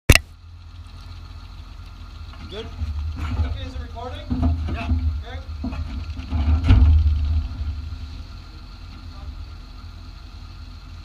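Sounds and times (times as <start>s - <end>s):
truck engine idling: 0.1s - 11.0s.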